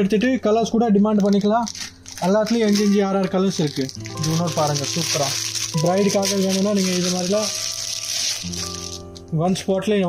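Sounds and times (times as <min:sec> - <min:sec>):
person speaking: 0:00.0 - 0:09.8
background music with held tones: 0:00.0 - 0:10.0.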